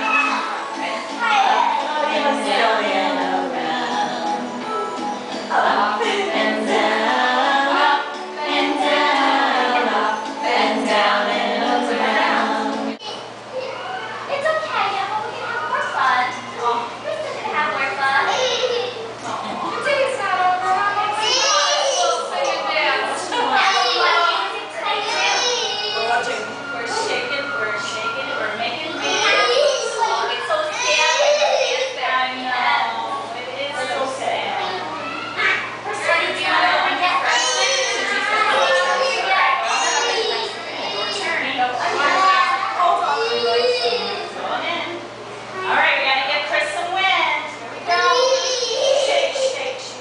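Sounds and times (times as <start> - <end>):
song with singing: 0.0 - 13.1
children talking and calling out: 0.0 - 50.0.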